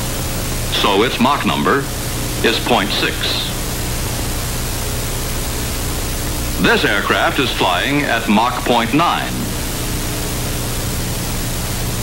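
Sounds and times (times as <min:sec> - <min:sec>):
faint low hum: 0:00.0 - 0:12.0
steady film hiss: 0:00.0 - 0:12.0.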